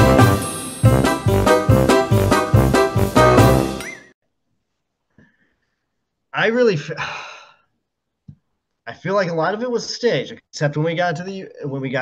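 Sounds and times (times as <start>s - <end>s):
man sighing: 6.9s - 7.7s
man speaking: 8.9s - 12.0s.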